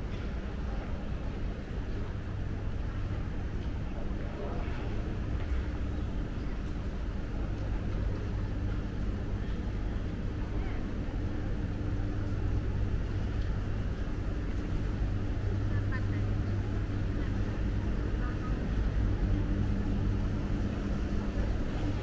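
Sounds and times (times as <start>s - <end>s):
faint distant voices: 0.0s - 22.0s
low hum of terminal hall: 0.0s - 22.0s.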